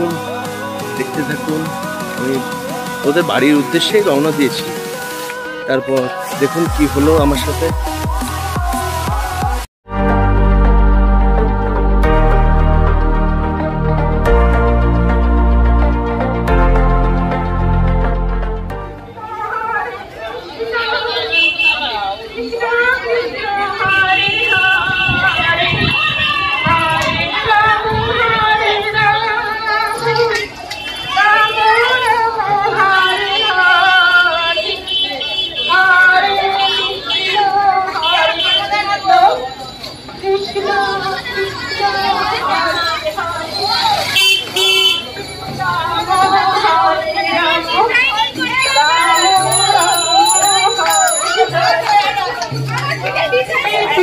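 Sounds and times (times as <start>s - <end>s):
people chattering: 0.0s - 9.4s, 18.7s - 54.0s
vehicle horn honking: 21.2s - 22.1s, 44.1s - 45.2s.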